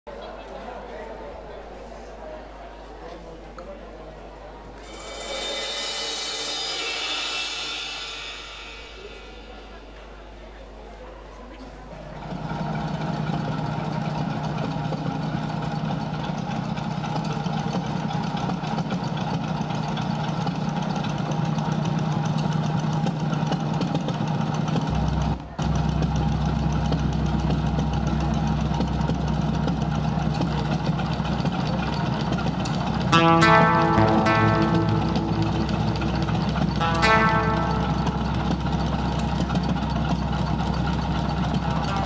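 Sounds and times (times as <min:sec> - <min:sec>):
engine-like drone: 0:04.8 - 0:10.8, 0:12.1 - 0:42.0.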